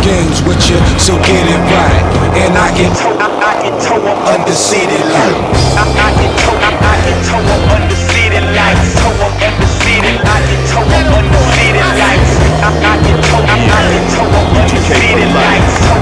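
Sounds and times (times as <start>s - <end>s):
hip-hop beat with deep bass: 0.0s - 16.0s
skateboard clacking: 0.0s - 16.0s
skateboard wheels rolling on asphalt: 0.0s - 16.0s.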